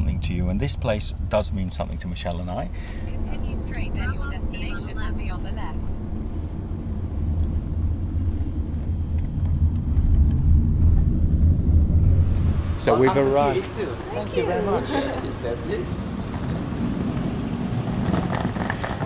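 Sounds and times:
car road and engine noise: 0.0 - 19.0.

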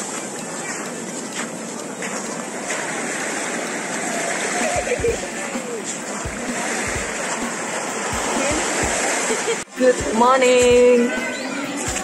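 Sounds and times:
footsteps on sand: 0.0 - 9.2
small waves washing onto beach: 0.0 - 12.0.

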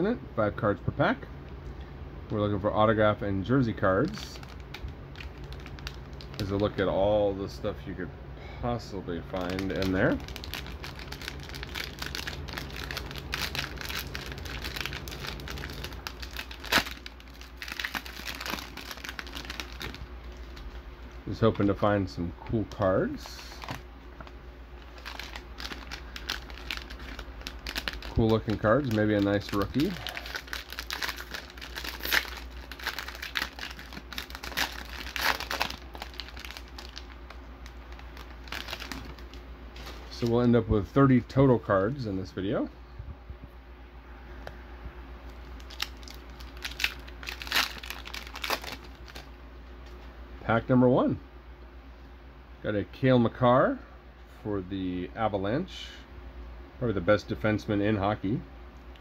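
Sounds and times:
plastic wrapper crinkling: 3.8 - 6.9, 9.3 - 20.8, 23.2 - 40.6, 45.3 - 50.0.

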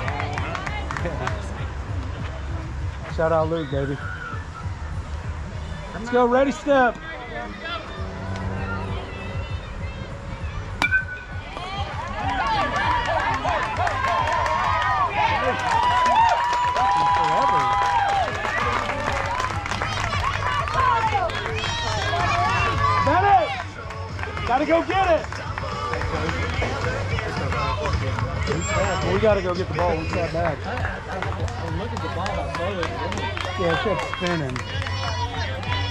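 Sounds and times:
crowd yelling and cheering: 0.0 - 2.1, 2.7 - 35.9
bat hitting ball: 10.8 - 11.7.

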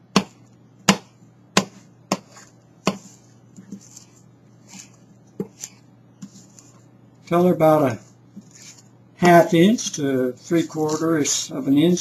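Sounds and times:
knife chopping on cutting board: 0.1 - 4.0.

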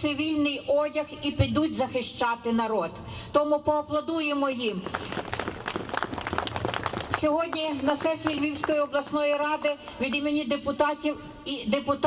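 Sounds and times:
crowd applauding: 4.9 - 8.8.

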